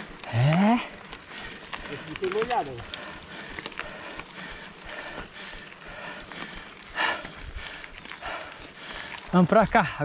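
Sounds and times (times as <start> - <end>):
bike rattling and knocking: 0.0 - 10.0
tyres rolling over paving stones: 0.0 - 10.0.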